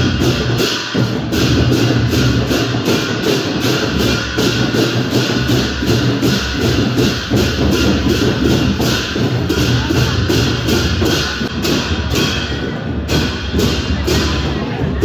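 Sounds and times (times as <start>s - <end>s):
loud festival music: 0.0s - 15.0s
sharp cymbal-like percussion strokes: 0.0s - 15.0s.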